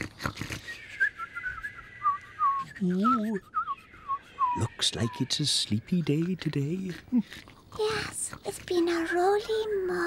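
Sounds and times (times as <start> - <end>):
wavering whistling snore: 0.0 - 5.3.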